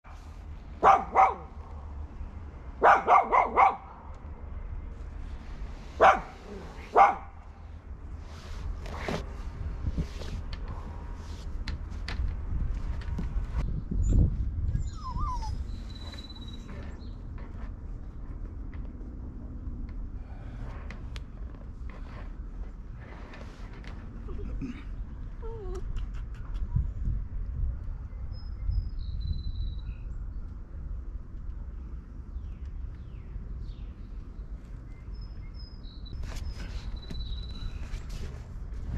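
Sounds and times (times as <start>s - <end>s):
puppy barking: 0.8s - 1.6s, 2.8s - 4.0s, 6.0s - 7.4s.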